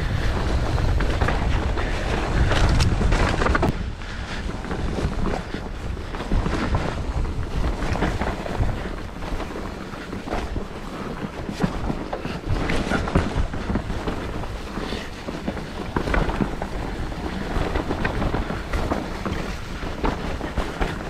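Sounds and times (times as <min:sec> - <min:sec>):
bike knocking and rattling: 0:00.0 - 0:21.0
tyres rumbling on dirt: 0:00.0 - 0:21.0
wind buffeting microphone: 0:00.0 - 0:21.0.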